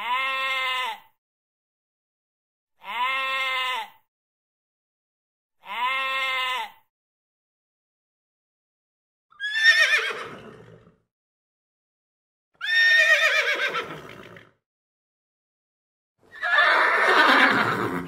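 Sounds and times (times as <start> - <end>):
sheep bleating: 0.0 - 1.0, 2.8 - 4.0, 5.6 - 6.8
horse whinnying: 9.3 - 11.0, 12.6 - 14.5, 16.3 - 18.0.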